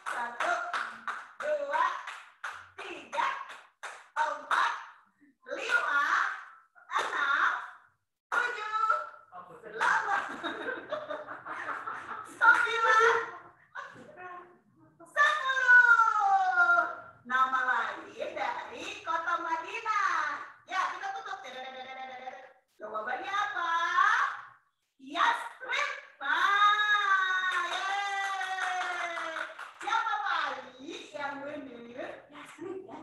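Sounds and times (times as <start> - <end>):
hands clapping: 0.0 - 4.8, 7.0 - 7.3, 12.0 - 13.0, 27.2 - 30.2.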